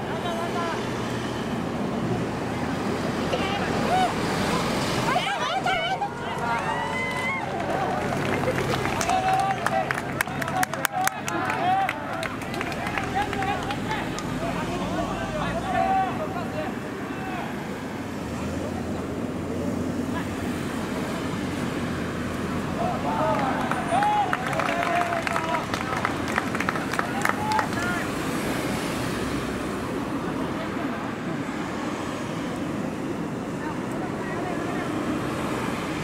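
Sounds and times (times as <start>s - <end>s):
players shouting: 3.2s - 17.7s, 22.6s - 28.4s.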